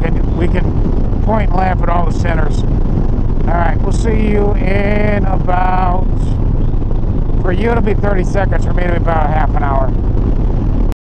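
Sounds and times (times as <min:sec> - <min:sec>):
person talking: 0:00.0 - 0:02.6, 0:03.5 - 0:06.4, 0:07.4 - 0:10.0
motorcycle engine cruising: 0:00.0 - 0:10.9
wind noise: 0:00.0 - 0:11.0.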